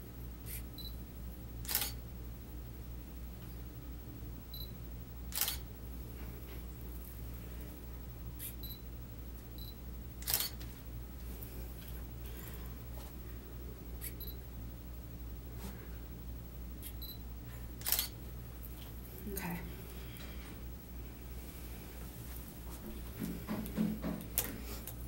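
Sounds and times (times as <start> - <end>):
low room hum: 0.0 - 25.0
camera beeps: 0.5 - 1.0, 1.6 - 2.0, 4.5 - 4.7, 5.3 - 5.6, 8.4 - 8.8, 9.6 - 10.6, 14.0 - 14.4, 16.8 - 17.2, 17.8 - 18.1
camera shutter clicks: 1.6 - 2.0, 5.3 - 5.6, 10.2 - 10.6, 17.8 - 18.2.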